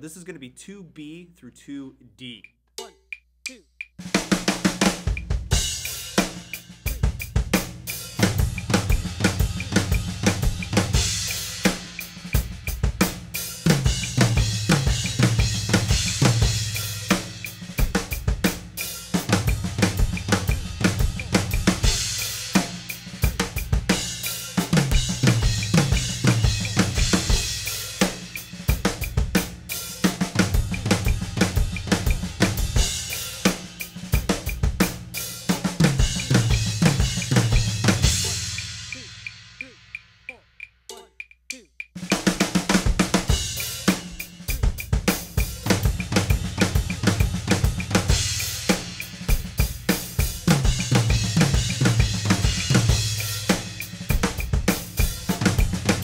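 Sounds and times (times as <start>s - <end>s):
drum kit fills on toms and snare: 0.0s - 56.0s
cymbals: 5.0s - 40.4s, 42.1s - 56.0s.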